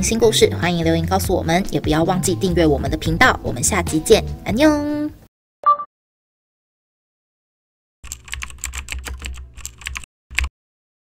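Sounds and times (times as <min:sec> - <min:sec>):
typing on a keyboard: 0:08.0 - 0:10.5.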